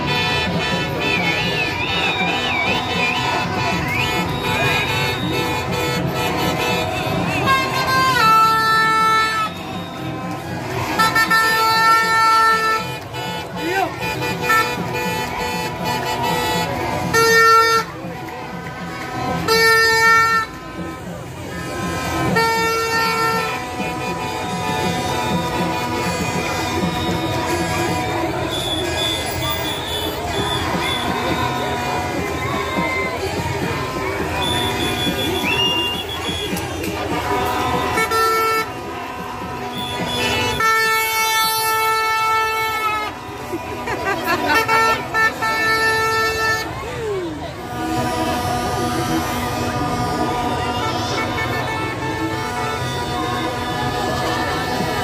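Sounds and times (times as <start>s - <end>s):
long horn blast: 0.0s - 1.6s, 2.4s - 55.0s
dense crowd noise: 0.0s - 55.0s.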